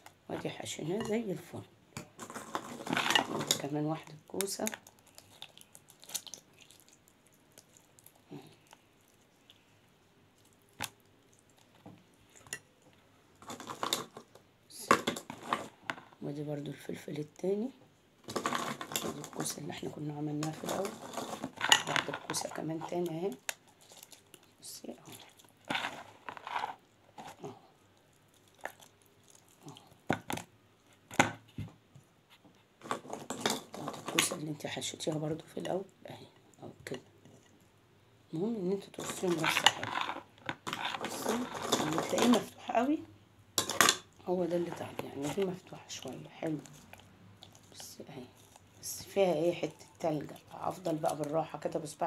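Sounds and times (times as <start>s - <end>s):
hands squishing food filling: 2.1s - 12.8s, 18.3s - 31.2s
wet crunching squelches: 4.3s - 9.7s.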